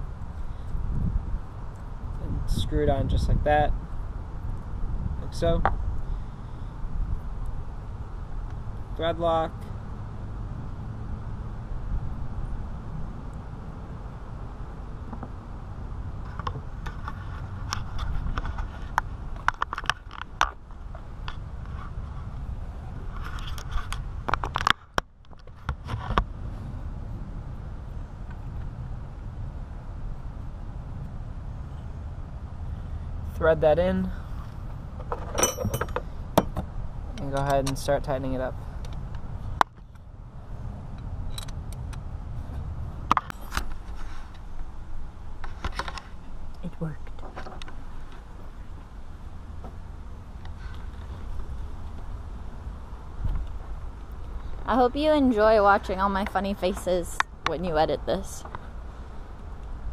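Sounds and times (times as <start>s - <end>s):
steady low rumble: 0.0s - 59.9s
metallic clicks of nuts handled: 35.0s - 36.6s.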